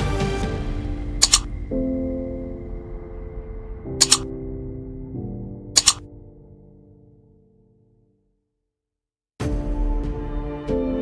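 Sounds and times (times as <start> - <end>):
background music sustained chords: 0.0 - 8.0, 9.4 - 11.0
double mouse clicks: 1.2 - 1.5, 4.0 - 4.2, 5.8 - 6.0.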